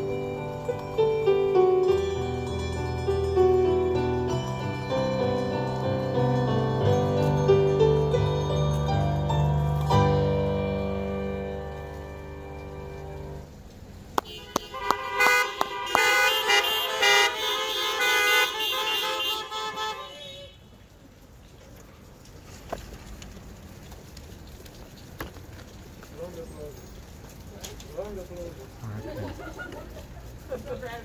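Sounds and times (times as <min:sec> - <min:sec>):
car horns honking: 0:14.2 - 0:20.8.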